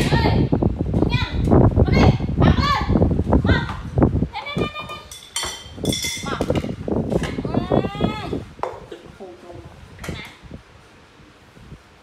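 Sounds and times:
high metallic ringing: 4.9s - 6.4s.

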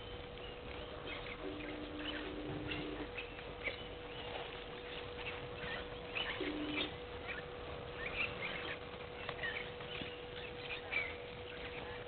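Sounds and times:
birds chirping and whistling: 0.0s - 12.0s
steady hum: 0.0s - 12.0s.

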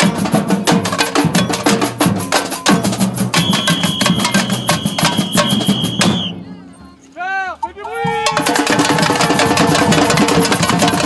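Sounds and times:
drums beating: 0.0s - 6.4s, 7.5s - 11.0s.

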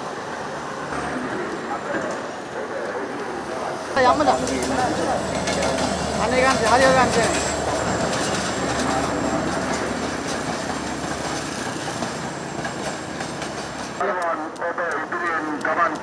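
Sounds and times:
train wheels on rail: 0.0s - 16.0s
person speaking: 1.2s - 7.6s.

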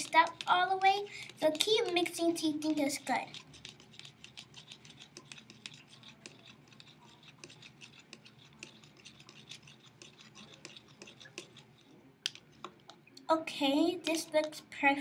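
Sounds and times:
spoon scraping a plastic cup: 0.2s - 12.9s.

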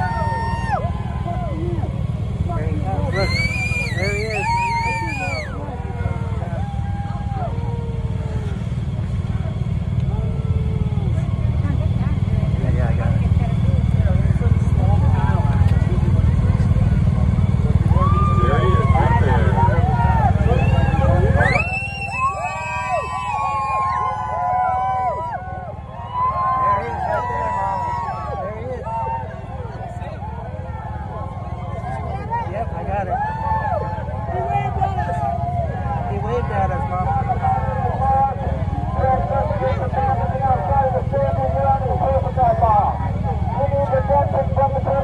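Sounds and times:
crowd cheering and shouting: 0.0s - 45.0s
heavy low rumble: 0.0s - 45.0s.

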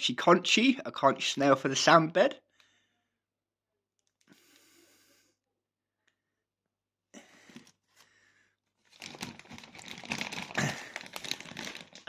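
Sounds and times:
plastic bags crinkling: 8.8s - 12.0s.

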